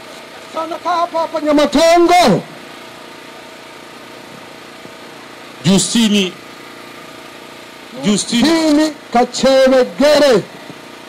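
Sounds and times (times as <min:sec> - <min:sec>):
steady mechanical hum: 0:00.0 - 0:11.0.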